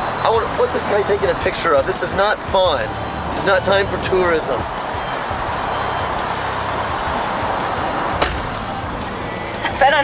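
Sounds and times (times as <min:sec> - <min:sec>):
rushing freeway noise: 0:00.0 - 0:10.0.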